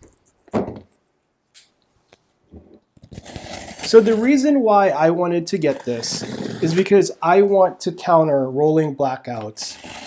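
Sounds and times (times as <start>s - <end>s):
scraping and rustling cardboard: 5.6s - 7.1s.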